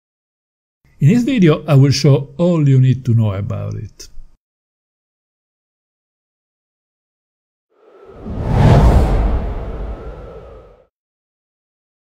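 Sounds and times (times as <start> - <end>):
whoosh with deep rumble: 7.8 - 10.9.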